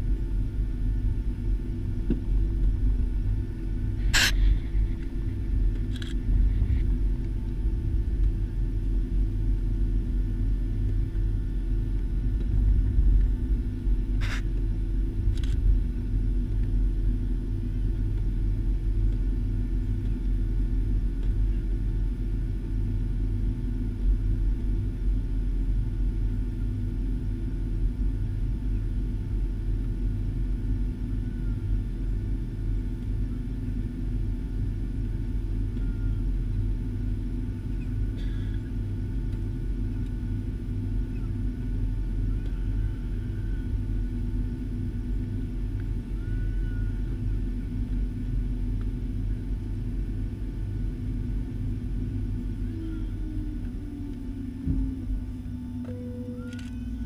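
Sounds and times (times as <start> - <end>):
aircraft engine rumble in cabin: 0.0 - 57.0.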